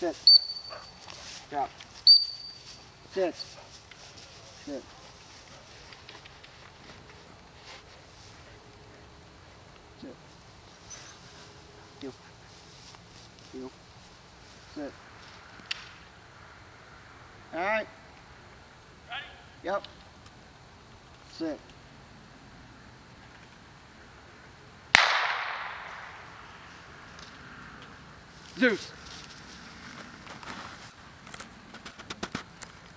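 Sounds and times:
faint outdoor background noise: 0.0s - 32.9s
person speaking a command: 1.5s - 1.7s, 3.1s - 3.4s, 19.1s - 19.8s, 28.6s - 29.0s
gunshot with echo: 24.9s - 26.2s.

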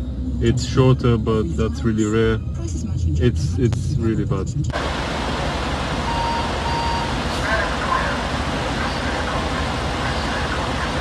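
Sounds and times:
traffic and car engines: 0.0s - 11.0s
short high beeps: 6.0s - 7.2s
faint voices: 7.3s - 11.0s.

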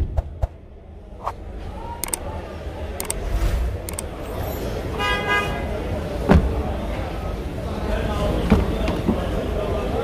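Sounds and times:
sharp clicks: 2.0s - 2.3s, 3.0s - 3.2s, 3.9s - 4.1s
car horn honk: 5.0s - 5.7s.

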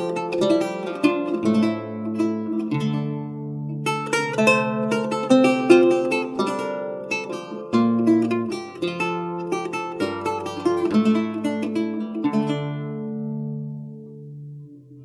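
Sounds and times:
solo lute playing: 0.0s - 15.0s.

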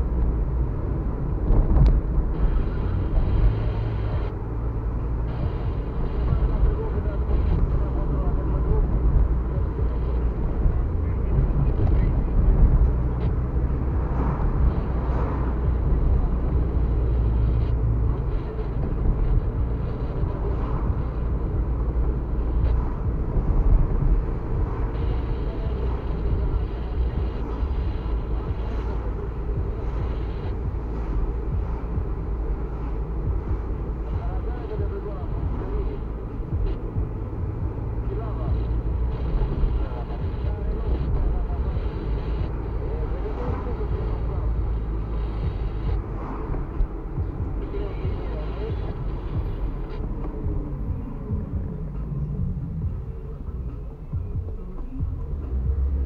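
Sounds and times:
car engine and tyre rumble: 0.0s - 56.0s.

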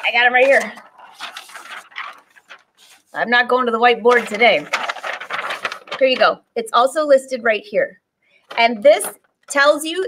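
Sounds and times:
paper rustling and crinkling: 0.0s - 3.2s, 4.0s - 6.4s.

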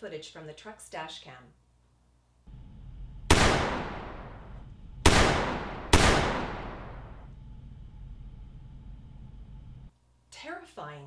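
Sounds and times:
handgun shots echoing: 5.1s - 7.0s.

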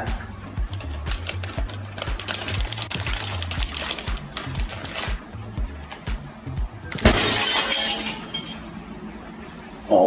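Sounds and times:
glass shattering: 6.9s - 8.7s.

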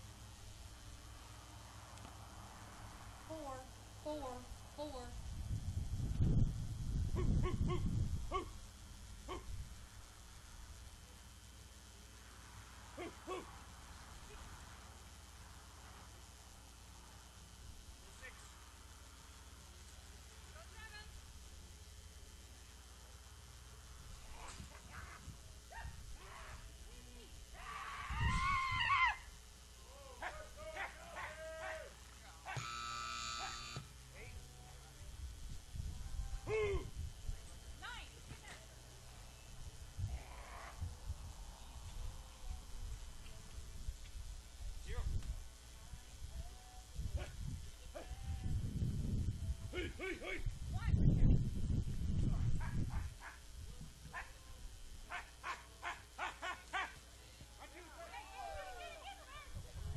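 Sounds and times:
dog barking: 7.4s - 8.6s, 9.3s - 9.5s, 13.0s - 13.6s, 30.2s - 32.7s, 33.4s - 33.7s, 55.1s - 57.0s
horn-like tone: 32.6s - 33.8s.

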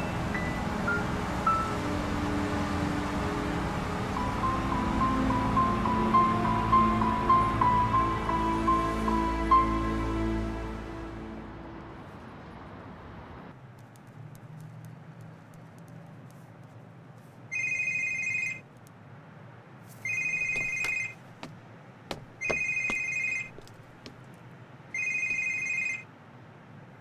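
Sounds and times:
mobile phone ringing: 17.5s - 18.6s, 20.1s - 21.2s, 22.4s - 23.7s, 25.0s - 26.0s.

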